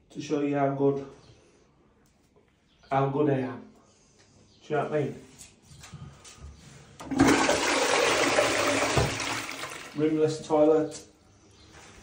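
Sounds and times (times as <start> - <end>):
toilet flushing: 7.0 - 10.2.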